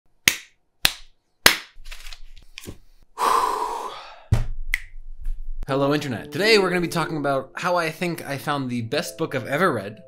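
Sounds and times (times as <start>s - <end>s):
sharp hand claps: 0.3s - 1.8s.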